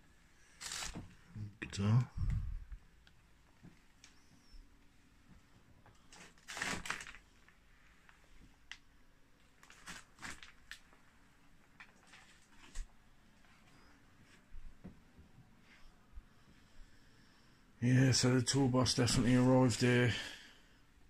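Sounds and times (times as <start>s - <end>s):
small clicks and rustles: 5.2s - 14.9s.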